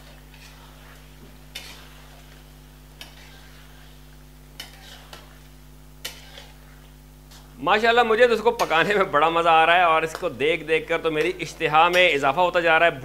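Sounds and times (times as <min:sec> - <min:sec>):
metal spatula scraping a pan: 0:00.0 - 0:09.0.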